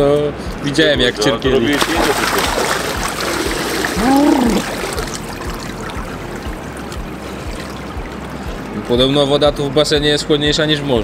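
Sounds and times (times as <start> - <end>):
pool water splashing: 1.6 - 9.5
water lapping and trickling: 1.7 - 9.5
man yelling: 4.0 - 4.7.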